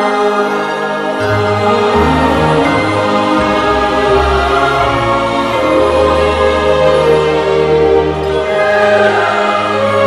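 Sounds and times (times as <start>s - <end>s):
choir singing long notes: 0.0s - 10.0s
sustained low chords: 1.2s - 9.4s.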